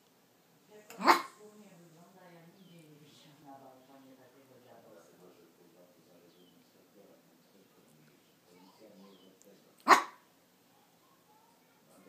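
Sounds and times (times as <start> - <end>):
puppy barking: 1.0 - 1.3, 9.8 - 10.2.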